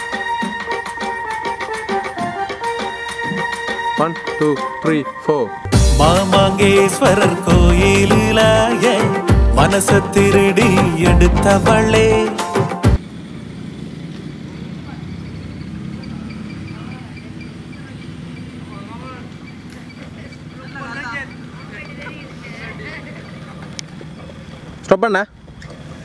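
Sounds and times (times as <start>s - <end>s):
song with singing: 0.0s - 13.0s
distant voices: 13.0s - 26.0s.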